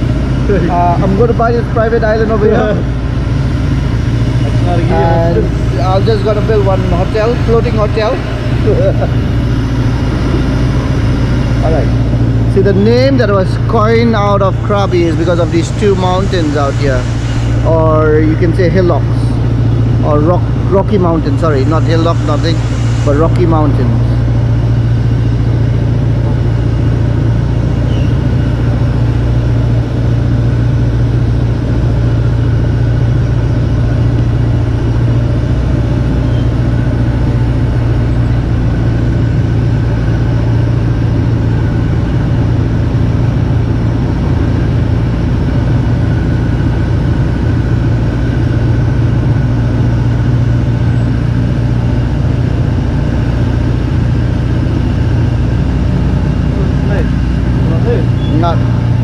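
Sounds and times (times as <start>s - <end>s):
boat engine droning: 0.0s - 59.0s.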